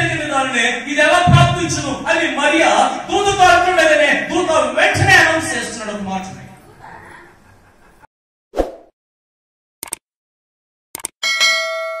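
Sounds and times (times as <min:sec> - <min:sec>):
quick clicks: 0:09.8 - 0:10.0, 0:11.0 - 0:11.2
notification bell chime: 0:11.2 - 0:12.0.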